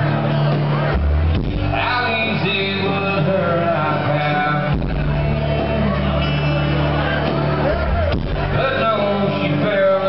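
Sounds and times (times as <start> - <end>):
country band playing: 0.0 - 10.0
man singing: 1.6 - 10.0.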